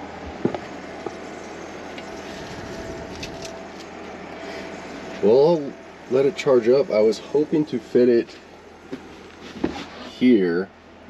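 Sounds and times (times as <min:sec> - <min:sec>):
air conditioner fan running: 0:00.0 - 0:11.0
faint steady whine: 0:00.0 - 0:11.0.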